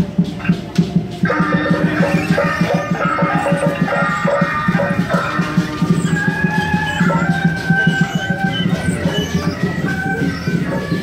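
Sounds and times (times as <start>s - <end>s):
fast steady drumbeat: 0.0s - 11.0s
melody of held notes: 1.2s - 9.8s.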